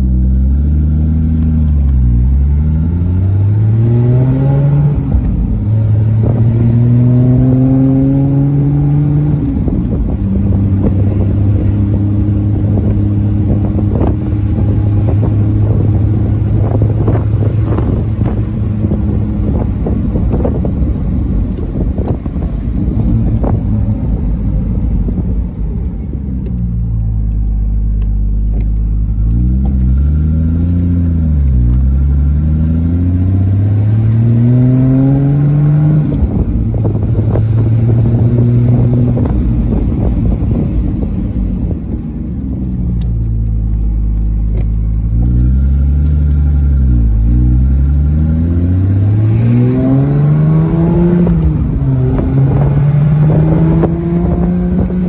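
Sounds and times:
car engine accelerating through gears: 0.0s - 55.0s.

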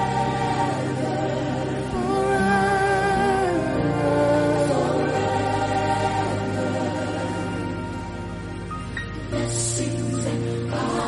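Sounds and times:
choir holding long notes: 0.0s - 11.0s.

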